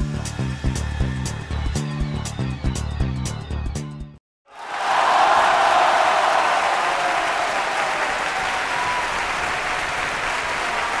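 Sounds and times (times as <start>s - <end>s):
applause: 4.5s - 11.0s.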